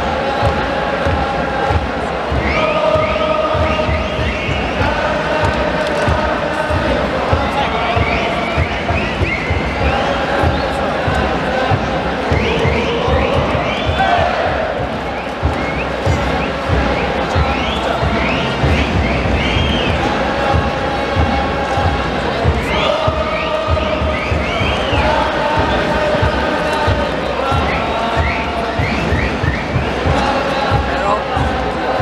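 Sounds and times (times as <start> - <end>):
crowd singing a chant: 0.0 - 32.0
drums thumping: 0.0 - 32.0.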